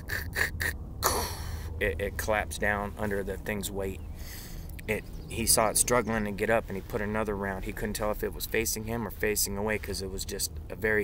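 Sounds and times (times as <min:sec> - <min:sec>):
man breathy laughter: 0:00.0 - 0:01.7
man gasp-like vocal sound: 0:01.0 - 0:01.8.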